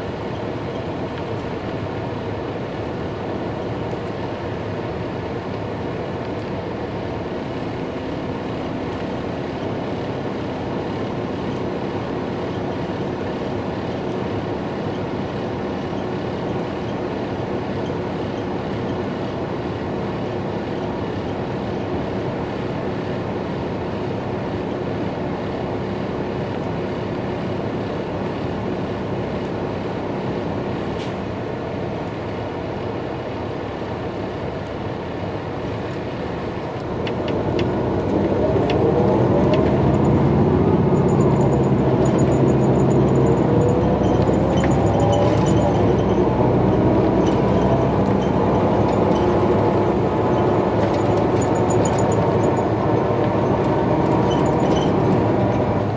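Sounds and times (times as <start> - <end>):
coach engine idling and accelerating: 0.0 - 55.9.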